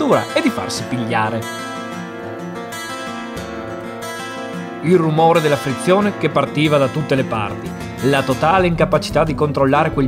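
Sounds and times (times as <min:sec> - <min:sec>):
narrator speaking: 0:00.0 - 0:01.7, 0:04.8 - 0:10.0
acoustic guitar strumming: 0:00.0 - 0:10.0.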